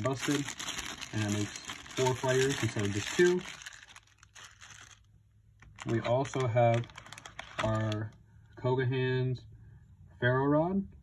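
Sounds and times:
plastic bag crinkling: 0.0 - 8.1.

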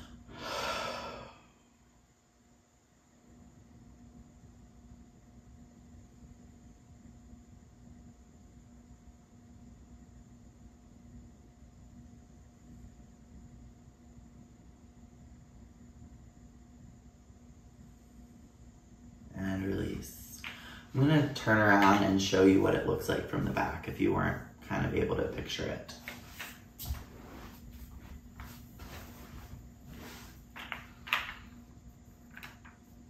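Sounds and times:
person breathing out deeply: 0.0 - 1.6
faint room hum: 0.0 - 33.0.

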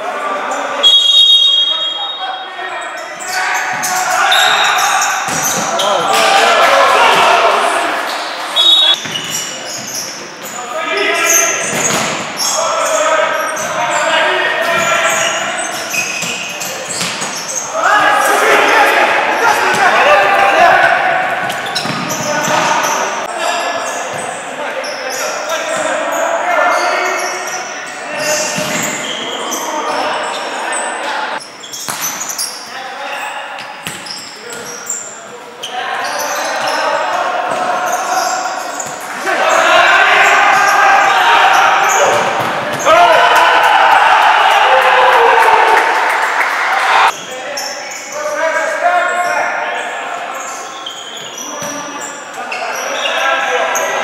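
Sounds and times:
voices talking and calling out: 0.0 - 54.0.

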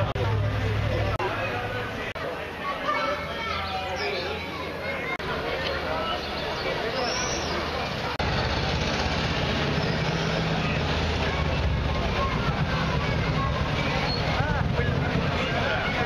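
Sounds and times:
people talking: 0.0 - 16.0.

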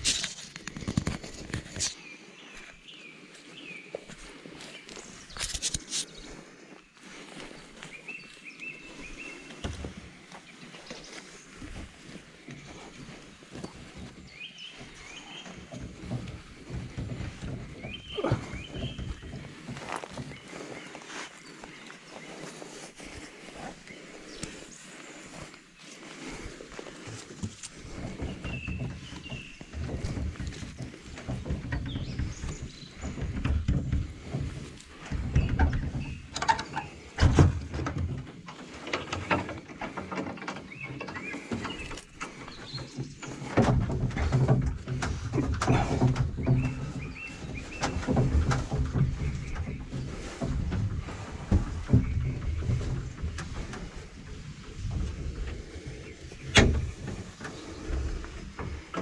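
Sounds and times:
scraping and rustling: 0.0 - 2.0, 4.2 - 6.4, 7.0 - 59.0
microphone handling rumble: 7.8 - 59.0
knocks and thumps on wood: 27.4 - 38.4, 43.4 - 55.6.

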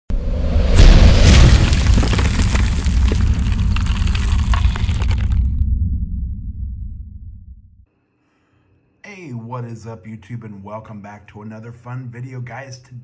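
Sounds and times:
deep boom: 0.1 - 7.8
crackling and snapping: 1.3 - 5.6
long low rumble: 5.3 - 7.8.

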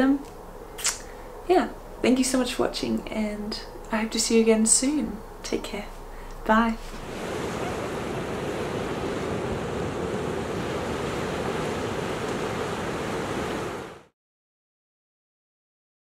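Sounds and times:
ocean surf washing onto beach: 6.9 - 14.1.

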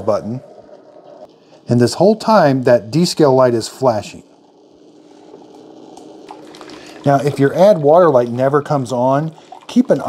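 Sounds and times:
coffee maker humming: 0.0 - 10.0.

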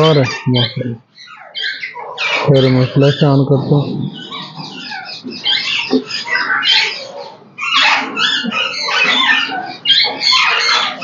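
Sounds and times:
parakeet harsh raspy calls: 0.0 - 11.0.

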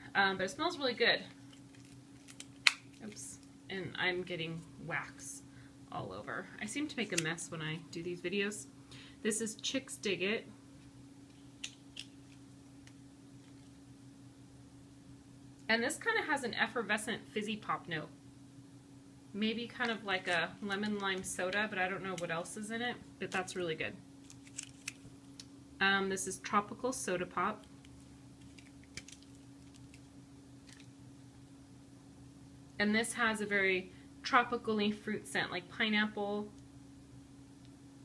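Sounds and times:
low electrical hum: 0.0 - 38.0.

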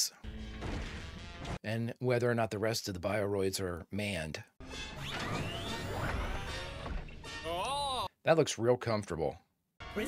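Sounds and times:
cartoon soundtrack music: 4.6 - 8.1, 9.8 - 10.0.

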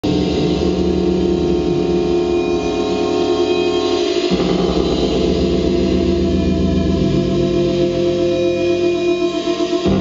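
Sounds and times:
loud noise-rock music: 0.0 - 10.0.

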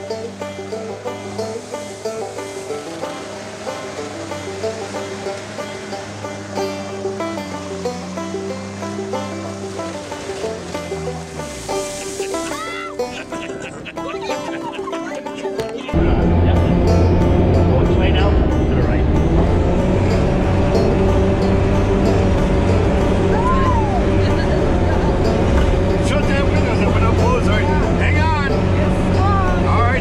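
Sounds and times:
diesel engine running under load: 0.0 - 30.0.

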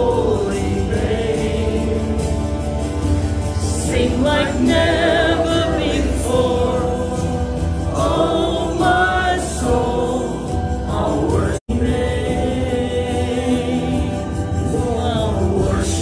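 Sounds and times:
congregation singing worship song: 0.0 - 16.0.

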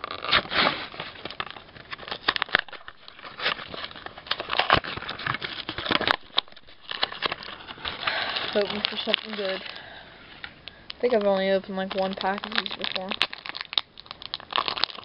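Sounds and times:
foil wrapper crinkling and tearing: 0.0 - 15.0.

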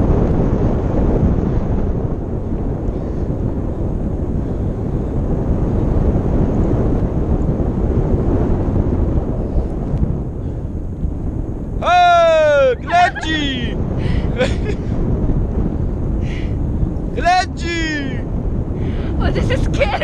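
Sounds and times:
wind noise on microphone: 0.0 - 20.0.

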